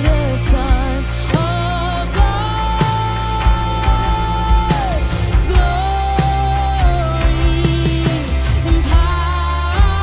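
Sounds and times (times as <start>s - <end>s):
live worship band music: 0.0s - 10.0s.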